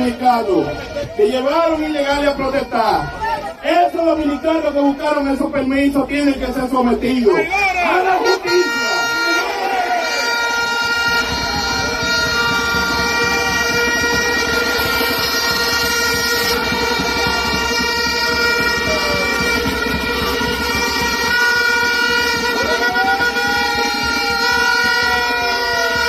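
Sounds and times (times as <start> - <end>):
crowd: 0.0 - 26.0
many horns sounding: 0.0 - 26.0.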